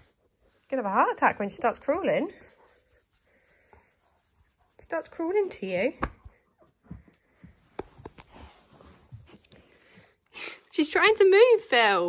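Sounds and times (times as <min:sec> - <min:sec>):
hand stroking fur: 0:00.0 - 0:05.8.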